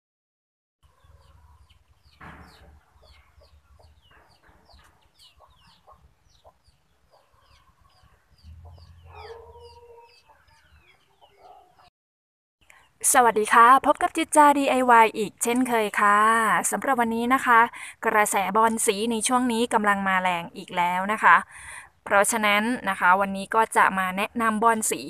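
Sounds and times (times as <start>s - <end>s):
chicken calling: 0.8s - 11.9s
small birds chirping: 0.8s - 11.9s, 12.6s - 13.6s.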